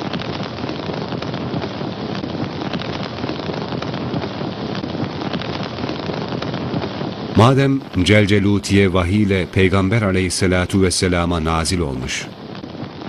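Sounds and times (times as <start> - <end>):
fire crackling: 0.0 - 13.0.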